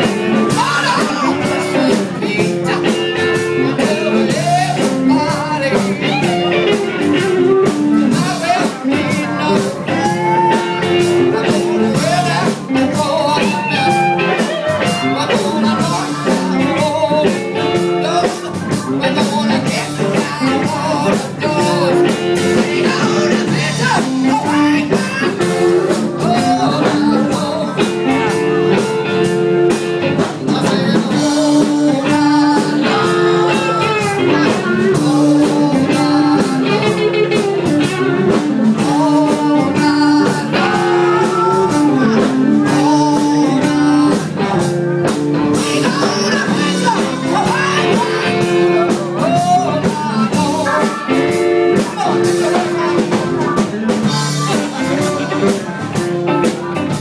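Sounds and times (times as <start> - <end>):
blues band playing: 0.0 - 57.0
woman singing: 0.3 - 28.4, 30.5 - 44.6, 45.6 - 55.8.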